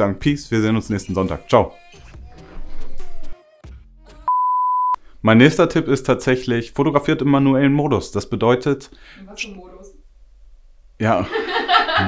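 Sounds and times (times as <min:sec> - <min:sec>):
steady electronic beep: 0:04.3 - 0:05.0.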